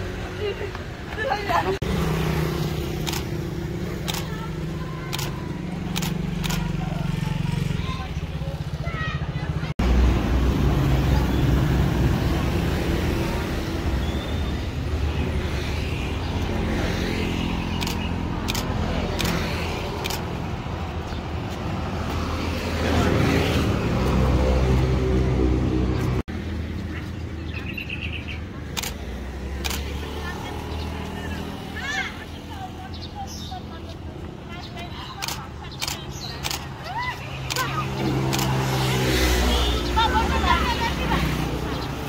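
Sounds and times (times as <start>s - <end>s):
motor scooters passing: 0.0s - 42.0s.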